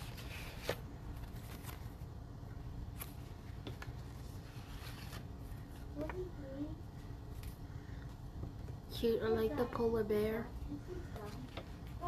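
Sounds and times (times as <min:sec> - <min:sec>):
paper rustling: 0:00.0 - 0:02.2, 0:02.8 - 0:06.3.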